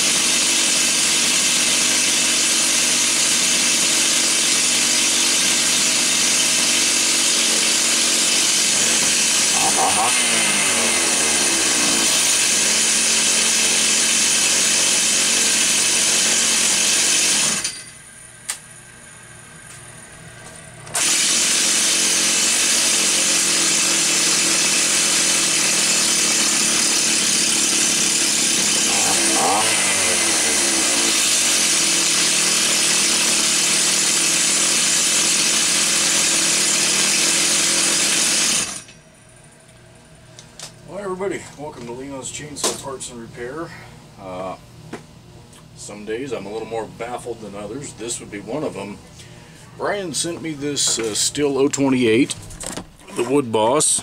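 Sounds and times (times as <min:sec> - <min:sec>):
chainsaw engine idling: 0:00.0 - 0:17.8, 0:20.4 - 0:42.0
chainsaw engine revving: 0:00.0 - 0:17.8, 0:20.9 - 0:38.9.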